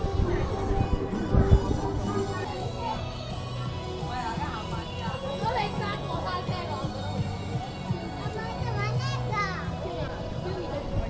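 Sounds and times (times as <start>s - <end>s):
background music: 0.0s - 11.0s
children calling and chattering: 0.0s - 11.0s
crowd of people: 0.0s - 11.0s.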